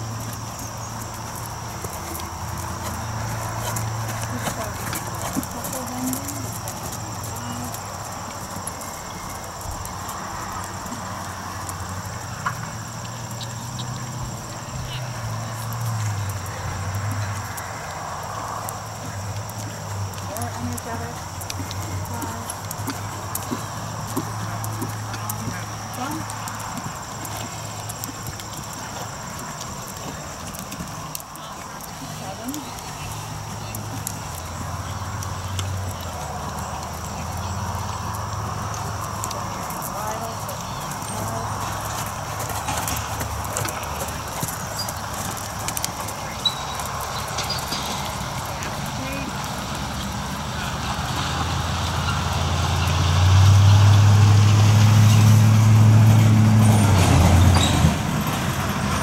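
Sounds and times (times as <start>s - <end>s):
horse hoofbeats on sand: 0.0s - 59.0s
distant voice: 1.4s - 11.5s, 30.8s - 53.0s.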